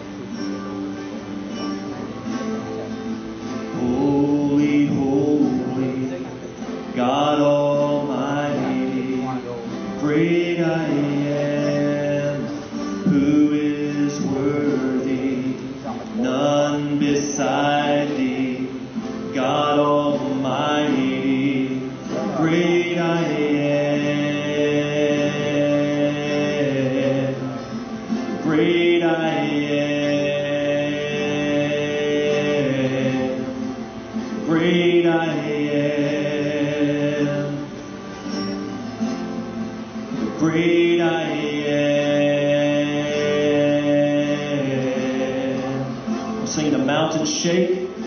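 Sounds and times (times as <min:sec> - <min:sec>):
acoustic guitars playing: 0:00.0 - 0:48.0
voices singing a long note: 0:02.6 - 0:48.0.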